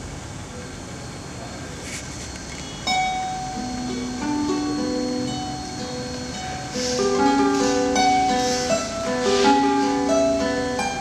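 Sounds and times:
room hiss: 0.0 - 11.0
plucked guitar notes: 2.8 - 11.0.

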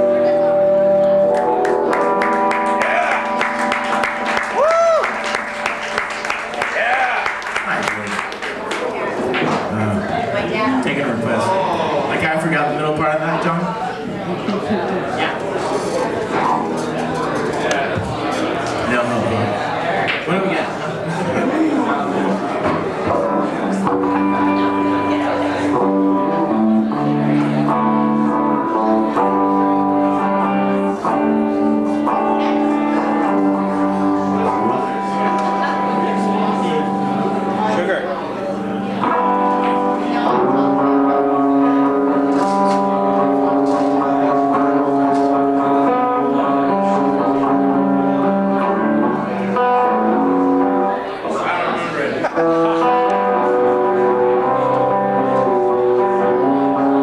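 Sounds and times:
live band music with guitar: 0.0 - 57.0.

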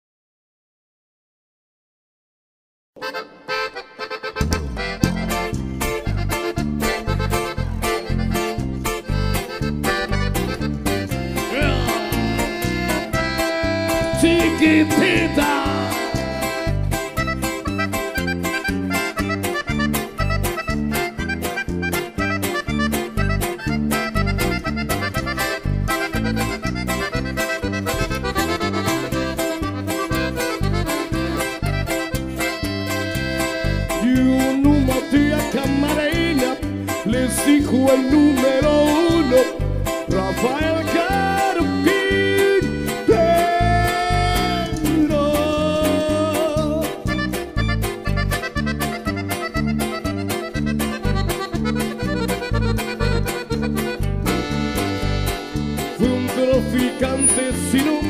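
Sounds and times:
accordion melody: 3.0 - 58.0
bass and guitar beat: 3.0 - 58.0.

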